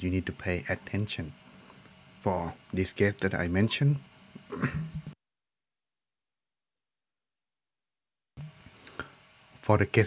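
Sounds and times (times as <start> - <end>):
man coughing: 4.5 - 5.0.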